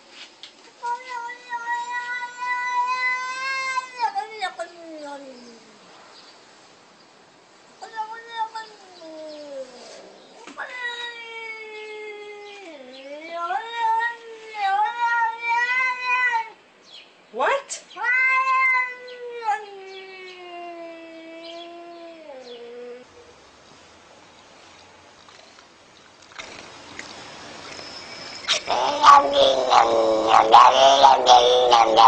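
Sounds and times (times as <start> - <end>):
cat yowling: 0.8 - 5.8, 7.8 - 16.6, 18.0 - 23.1, 28.4 - 32.0.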